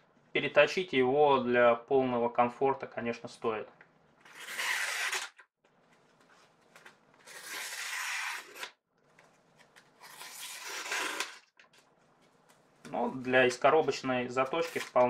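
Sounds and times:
knife slicing paper: 0:07.2 - 0:08.8.

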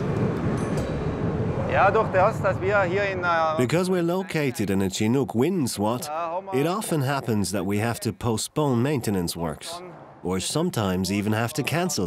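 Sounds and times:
highway traffic rumble: 0:00.0 - 0:12.0
wind: 0:00.0 - 0:12.0
man speaking: 0:01.7 - 0:12.0.

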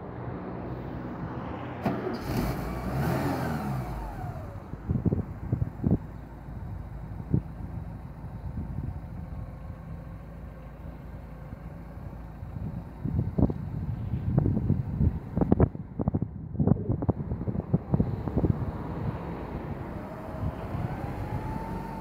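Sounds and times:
vehicle passing: 0:00.0 - 0:05.2, 0:17.1 - 0:22.0
car engine idling: 0:03.8 - 0:18.7.

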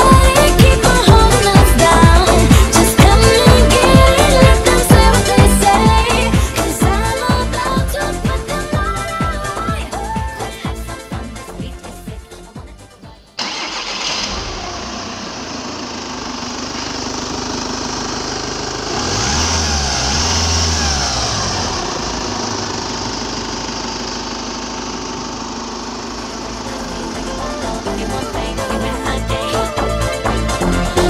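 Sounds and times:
diesel engine idling and revving: 0:00.0 - 0:31.0.

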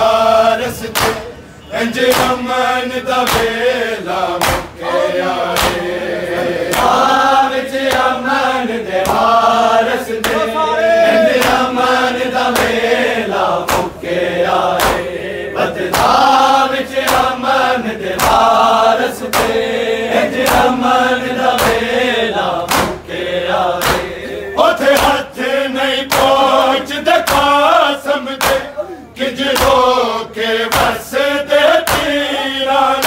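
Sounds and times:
men chanting in unison: 0:00.0 - 0:33.0
palms slapping bare chests: 0:00.9 - 0:01.3, 0:03.2 - 0:03.6, 0:04.4 - 0:04.8, 0:05.5 - 0:05.9, 0:09.0 - 0:09.3, 0:12.5 - 0:12.8, 0:13.6 - 0:14.0, 0:14.8 - 0:15.1, 0:17.0 - 0:17.3, 0:18.2 - 0:18.6, 0:19.2 - 0:19.6, 0:21.5 - 0:22.0, 0:22.6 - 0:23.0, 0:23.8 - 0:24.2, 0:26.1 - 0:26.4, 0:27.2 - 0:27.6, 0:28.4 - 0:28.7, 0:29.5 - 0:29.9, 0:30.7 - 0:31.0, 0:31.8 - 0:32.2.

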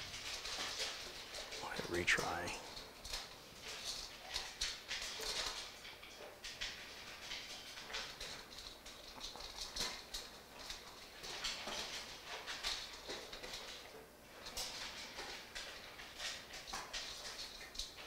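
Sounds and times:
dogs chewing food: 0:00.0 - 0:18.0.

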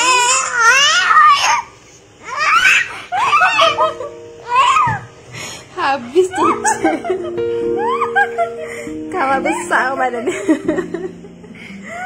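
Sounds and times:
baby laughing: 0:02.3 - 0:05.0.

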